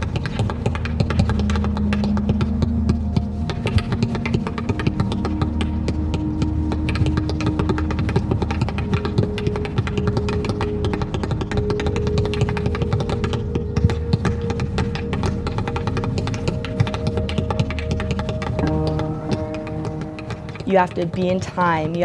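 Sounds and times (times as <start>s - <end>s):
music with low bass: 0.0s - 22.0s
tap shoes tapping: 0.0s - 22.0s.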